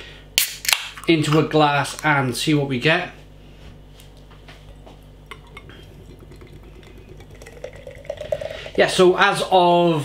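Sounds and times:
can and glass clinking: 0:05.3 - 0:08.8.

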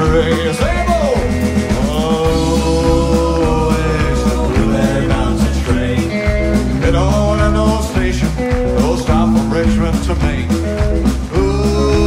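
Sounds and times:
country rock band playing: 0:00.0 - 0:12.0.

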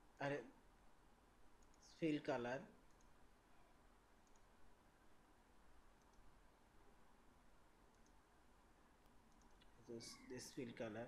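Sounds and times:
computer mouse click: 0:01.6 - 0:01.8, 0:02.9 - 0:03.2, 0:04.2 - 0:04.5, 0:06.0 - 0:06.3, 0:07.9 - 0:08.2, 0:09.0 - 0:09.7.

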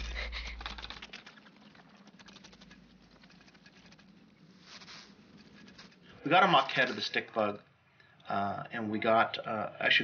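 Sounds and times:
insect legs clicking on stone: 0:00.0 - 0:07.4
soft rustle: 0:00.0 - 0:08.0.

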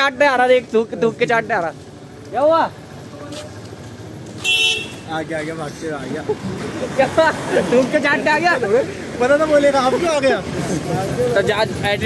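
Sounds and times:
street traffic noise: 0:00.0 - 0:12.0
vehicle horn toot: 0:04.4 - 0:05.1.

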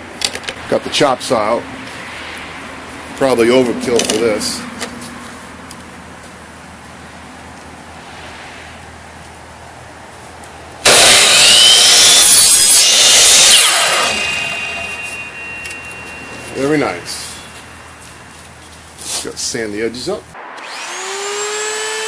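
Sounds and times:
miter saw cutting tube: 0:10.8 - 0:17.8, 0:20.5 - 0:22.0.

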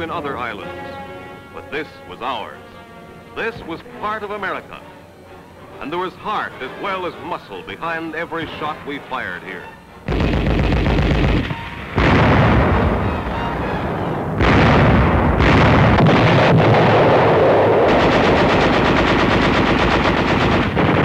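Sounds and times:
gunfire and shell blasts: 0:10.1 - 0:13.0, 0:17.8 - 0:21.0
rapid machine-gun fire: 0:10.1 - 0:13.0, 0:14.4 - 0:21.0.

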